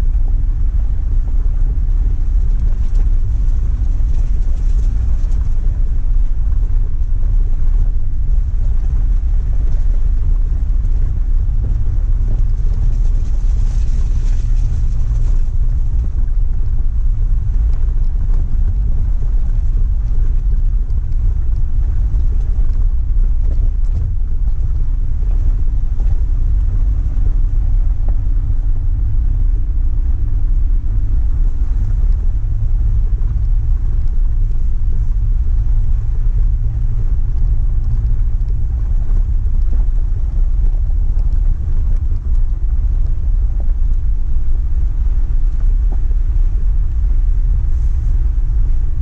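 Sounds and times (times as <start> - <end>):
vehicle driving on gravel: 0.0 - 49.0.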